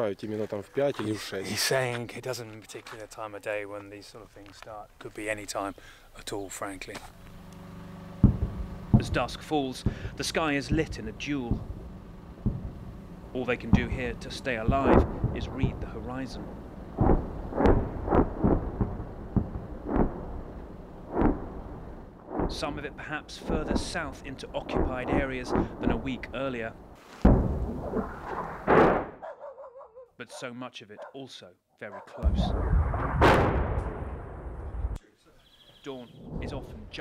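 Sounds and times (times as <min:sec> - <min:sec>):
sharp crack: 0:06.9 - 0:29.2, 0:32.2 - 0:35.0
distant shelling booms: 0:08.1 - 0:29.2, 0:32.2 - 0:35.0
explosion rumble: 0:08.2 - 0:29.1, 0:32.2 - 0:35.0, 0:36.2 - 0:37.0.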